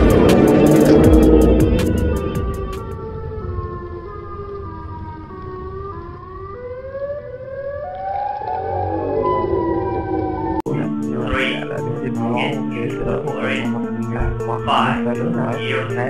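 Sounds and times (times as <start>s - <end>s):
music beat: 0.0s - 3.0s, 10.7s - 16.0s
siren-like wailing tones: 0.0s - 16.0s.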